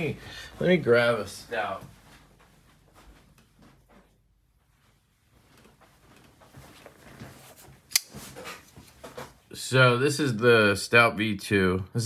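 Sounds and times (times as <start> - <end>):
faint handling and rustling: 0.0 - 9.5.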